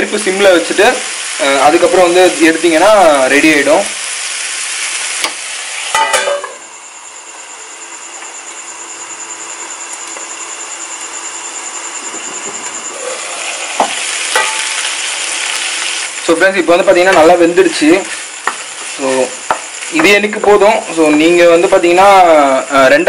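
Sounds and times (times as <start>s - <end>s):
chicken sizzling in a pan: 0.0s - 6.7s, 12.9s - 23.0s.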